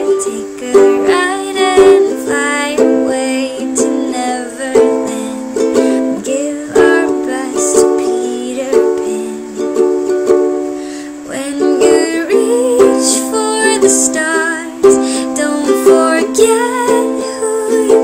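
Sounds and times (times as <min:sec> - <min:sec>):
ukulele strumming chords: 0:00.0 - 0:18.0.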